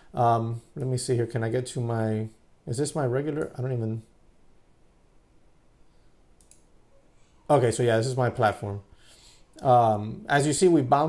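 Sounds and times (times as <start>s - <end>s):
computer mouse click: 6.4s - 6.7s.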